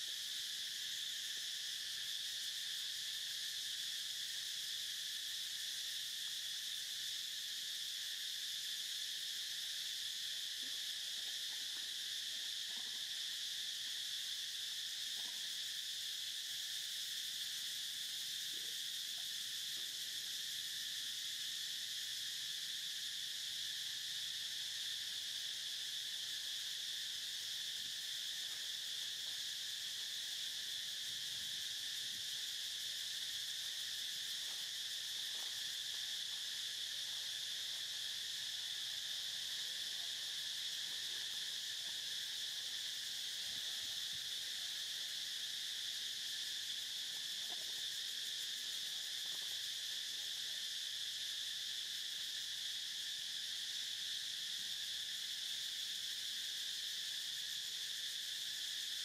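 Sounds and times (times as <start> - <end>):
high-pitched insect chorus: 0.0 - 59.0.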